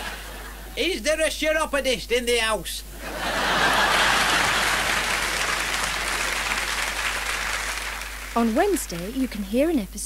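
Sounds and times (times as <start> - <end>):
audience applause: 3.3 - 9.5.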